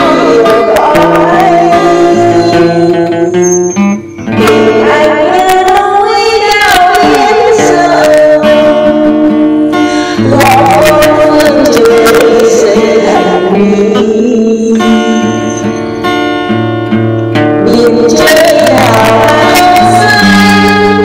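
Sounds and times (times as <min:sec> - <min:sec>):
woman singing: 0:00.0 - 0:03.2, 0:04.3 - 0:15.7, 0:17.6 - 0:21.0
acoustic guitar: 0:00.0 - 0:21.0.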